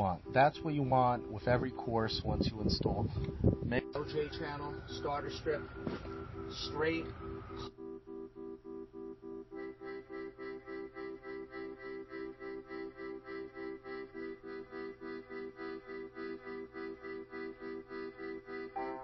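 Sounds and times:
higher notes: 0.0 - 19.0
pulsing sustained chords: 0.0 - 19.0.

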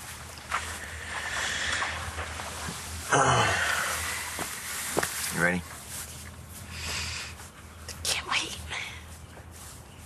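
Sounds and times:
people whispering: 6.8 - 9.2.

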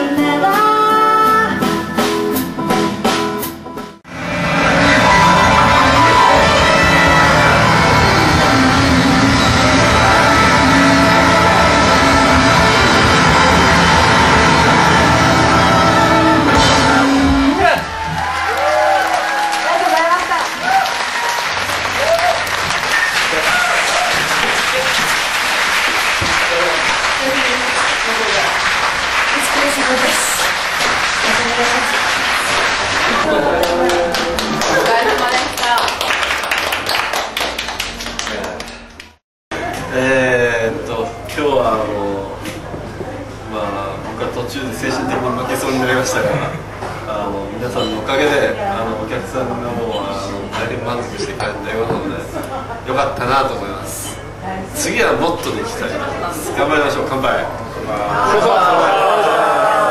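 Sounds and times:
live band playing: 0.0 - 18.4
group clapping hands: 18.0 - 39.2.

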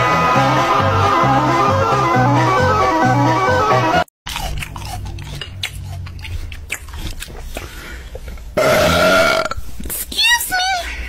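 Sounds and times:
loud drawn-out burp: 8.6 - 9.7.

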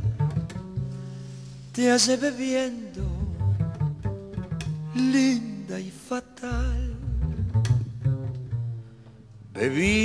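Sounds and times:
deep double bass notes: 0.0 - 2.1, 3.0 - 5.1, 6.5 - 10.0.

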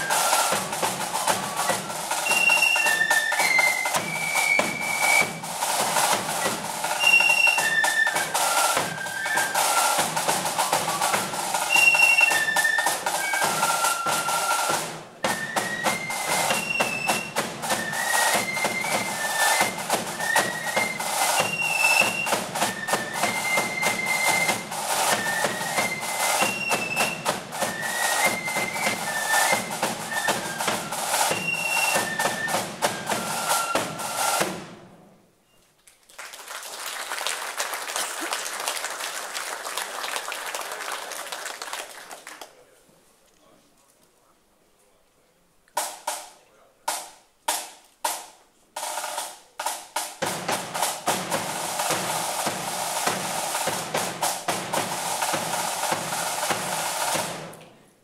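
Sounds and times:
flutes playing quick melody: 0.0 - 34.8
snare and bass drums beat: 0.0 - 35.1, 45.8 - 57.6.

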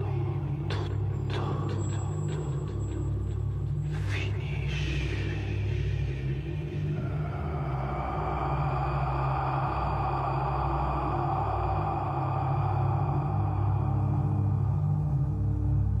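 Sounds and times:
low rumbling drone: 0.0 - 16.0.

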